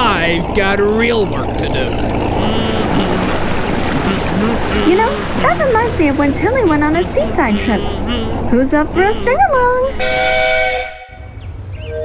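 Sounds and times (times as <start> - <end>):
water churning at hull: 0.0 - 9.4
boat engine rumbling: 0.0 - 11.9.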